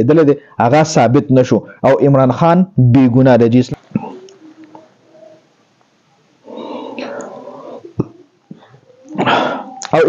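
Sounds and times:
man whispering: 3.7 - 4.3.

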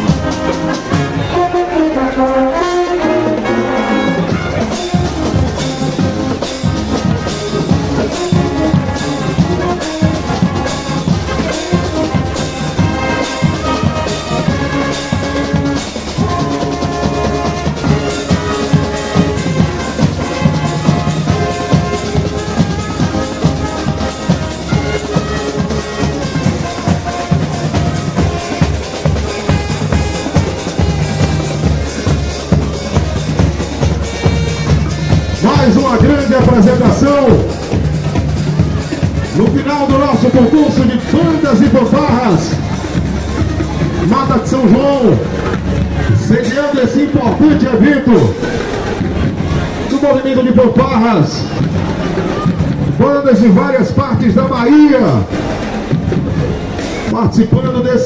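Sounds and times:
marching drums steady beat: 0.0 - 2.0, 2.6 - 57.5
brass section sustained chords: 0.0 - 57.9.

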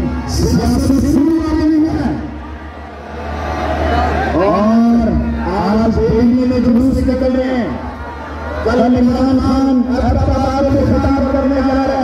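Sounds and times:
man singing over loudspeaker: 4.3 - 7.7, 8.6 - 12.0.

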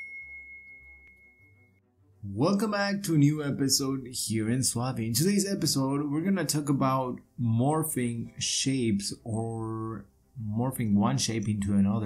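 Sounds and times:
high pure chime tone: 0.0 - 1.8.

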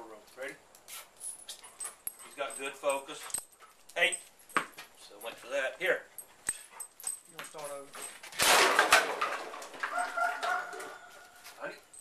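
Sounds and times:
plastic bottles clattering and crinkling: 8.0 - 10.9.

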